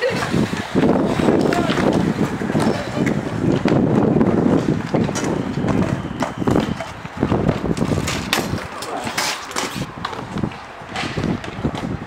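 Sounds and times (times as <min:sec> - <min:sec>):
scooter wheels rolling on concrete: 0:00.0 - 0:12.0.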